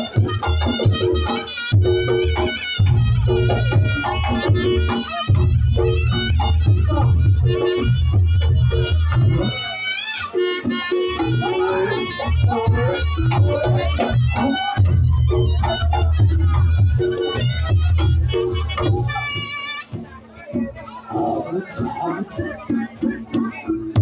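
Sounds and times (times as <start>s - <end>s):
drums and gongs beating: 0.0s - 24.0s
reedy shawm melody: 0.0s - 24.0s.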